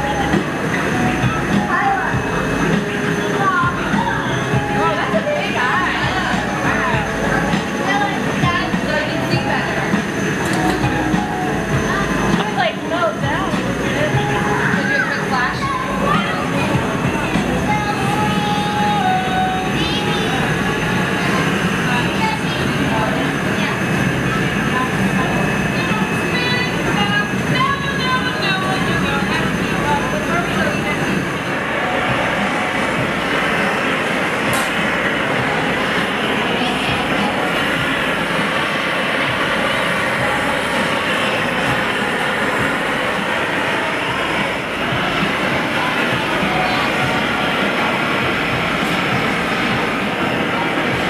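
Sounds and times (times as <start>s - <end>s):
faint voices talking: 0.0s - 51.0s
gas burners roaring: 0.0s - 51.0s.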